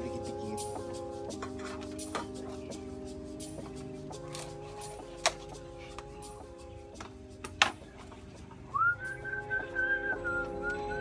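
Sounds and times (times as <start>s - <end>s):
background music with chords: 0.0s - 11.0s
man whistling: 8.7s - 11.0s.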